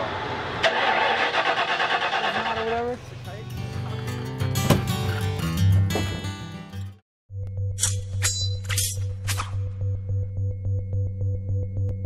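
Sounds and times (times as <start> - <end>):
engine starter cranking: 0.6 - 2.9
sharp click: 7.8 - 9.6.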